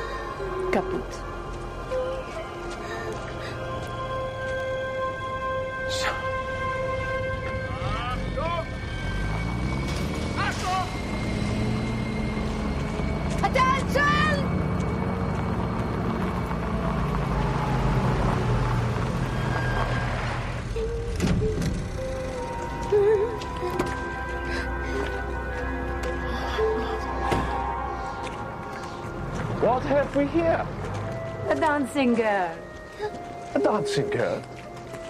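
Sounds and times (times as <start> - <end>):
car engine running low: 7.4 - 28.6.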